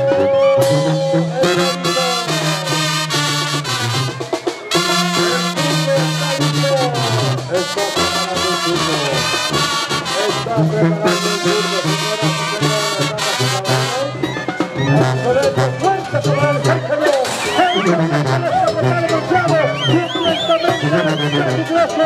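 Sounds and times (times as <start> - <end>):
brass band music: 0.0 - 22.0
rhythmic bass line: 0.0 - 22.0.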